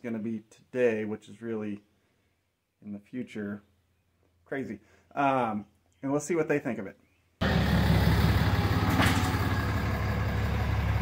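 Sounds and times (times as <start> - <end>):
diesel engine idling: 7.4 - 11.0.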